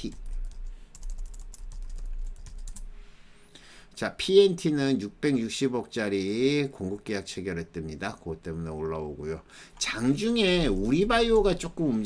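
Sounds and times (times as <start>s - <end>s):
rapid typing on keyboard: 0.0s - 2.9s, 10.2s - 12.0s.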